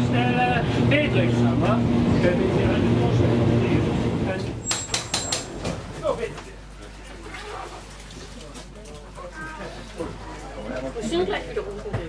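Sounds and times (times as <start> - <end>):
passengers talking: 0.0 - 4.7.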